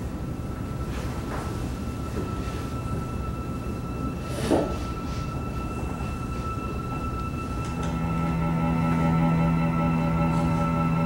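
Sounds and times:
steady low rumble: 4.8s - 11.0s.

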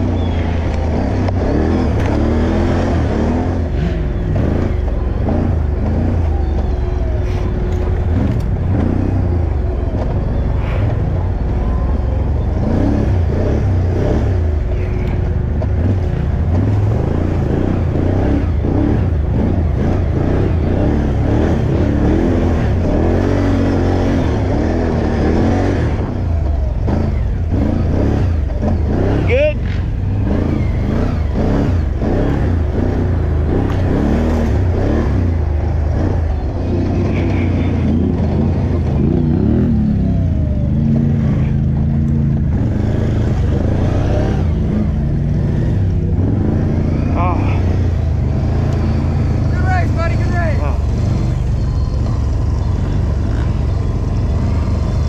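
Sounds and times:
atv engine revving: 0.0s - 55.0s.

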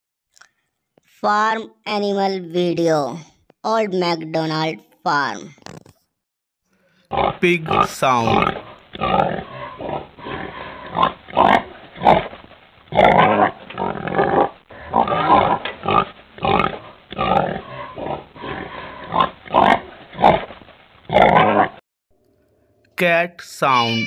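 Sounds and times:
pig grunting and squealing: 6.9s - 21.8s.

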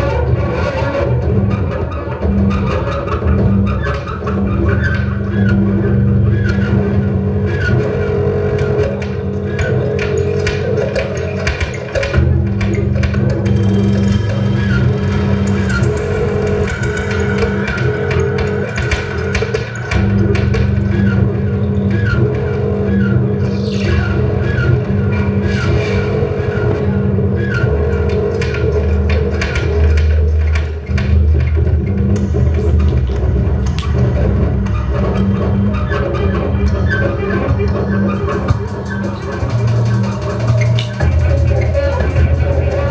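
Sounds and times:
low electronic drone: 0.0s - 42.9s.

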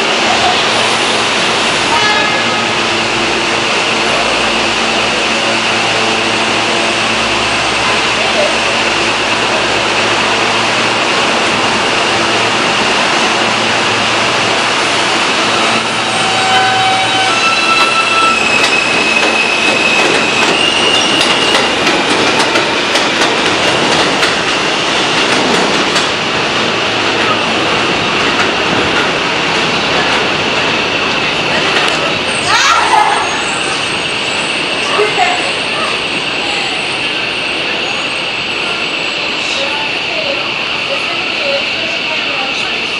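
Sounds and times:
train wheels rumbling: 0.0s - 42.9s
train motor whine: 15.2s - 22.7s
wheels clacking on rail joints: 16.5s - 32.3s.

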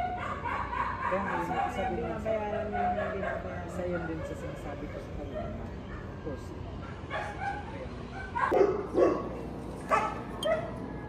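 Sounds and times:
dog barking: 0.0s - 6.1s, 6.8s - 10.8s.

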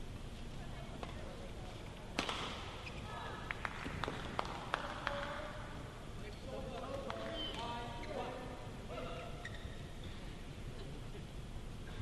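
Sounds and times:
rackets striking shuttlecock: 2.1s - 2.7s
shoes squeaking on court: 7.3s - 8.4s, 9.2s - 10.3s.

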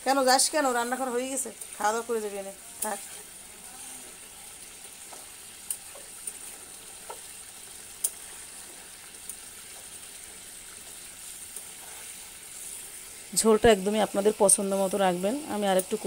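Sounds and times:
gravy simmering and sizzling: 0.0s - 16.0s.

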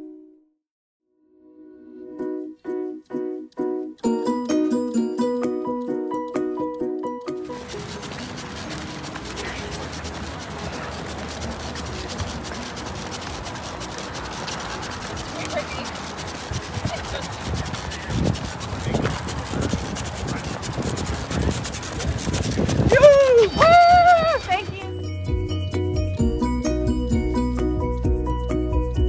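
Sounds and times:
outdoor road noise: 7.4s - 29.0s
faint voices: 7.5s - 24.9s.

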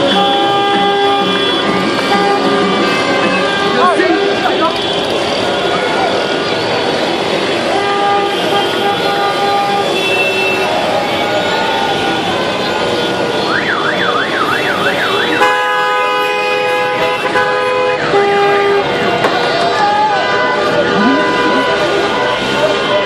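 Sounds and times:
many car horns honking: 0.0s - 23.0s
siren-style horn warbling: 0.0s - 23.0s.

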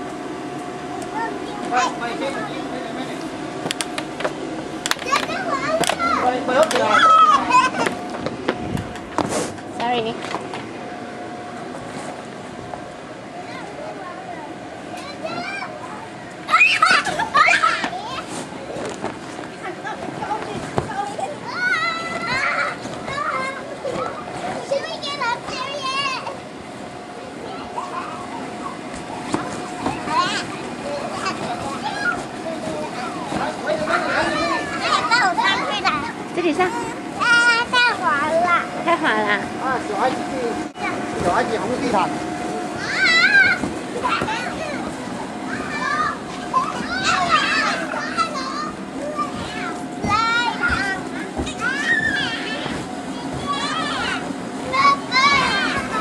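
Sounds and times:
children playing and shouting: 0.1s - 56.0s.

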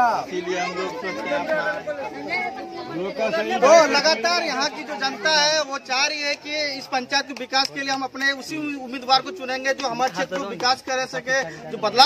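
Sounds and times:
several people talking: 0.0s - 12.0s.

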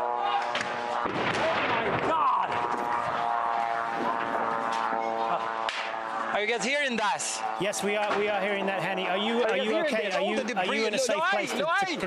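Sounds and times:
knocks and bangs: 0.6s - 5.0s.

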